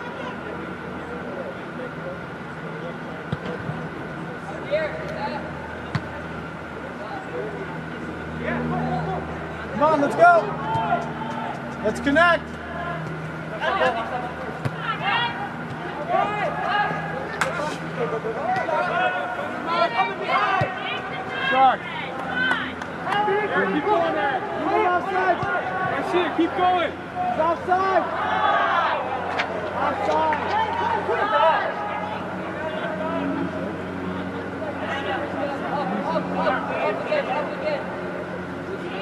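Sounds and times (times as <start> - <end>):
distant voices shouting: 7.6 - 39.0.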